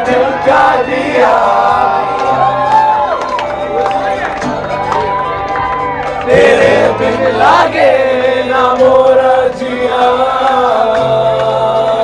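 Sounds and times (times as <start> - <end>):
pop band playing live: 0.0 - 12.0.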